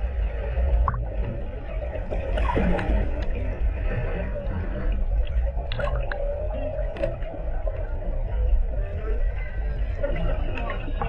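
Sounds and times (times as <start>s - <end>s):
underwater water rumble: 0.0s - 11.0s.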